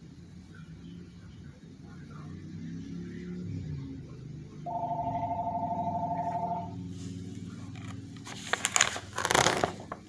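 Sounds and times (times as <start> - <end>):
two-tone telephone ring: 4.7 - 6.7.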